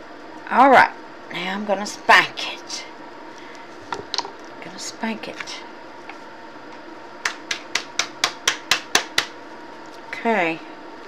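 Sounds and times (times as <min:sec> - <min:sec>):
hand smacking silicone mold: 0:07.2 - 0:09.4.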